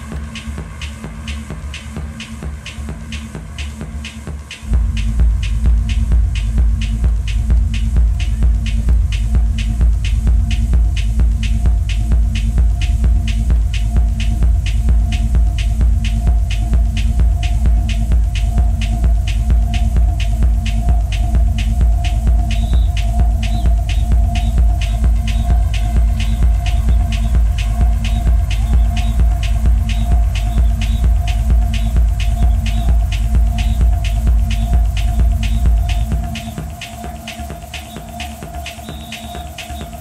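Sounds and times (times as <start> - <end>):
hi-hat ticking: 0.0 - 40.0
throbbing techno bass: 0.0 - 40.0
mid-pitched drone: 9.5 - 40.0.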